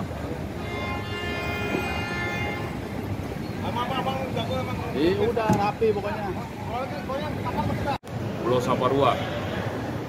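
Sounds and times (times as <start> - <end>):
traffic noise: 0.0 - 10.0
vehicle horn: 0.5 - 3.3.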